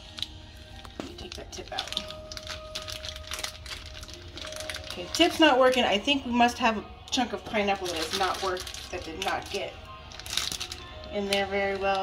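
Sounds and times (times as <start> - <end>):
plastic bag crinkling: 0.0 - 6.2, 7.5 - 12.0.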